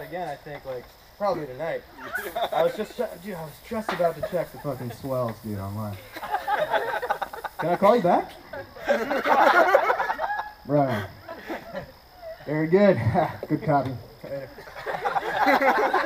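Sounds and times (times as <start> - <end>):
laughter: 2.0 - 3.0, 3.9 - 5.2, 6.0 - 13.3, 14.5 - 16.0.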